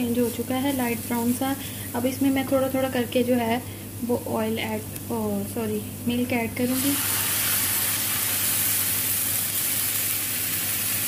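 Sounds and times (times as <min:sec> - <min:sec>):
hissing and sizzling fat: 0:00.0 - 0:05.1, 0:06.6 - 0:11.0.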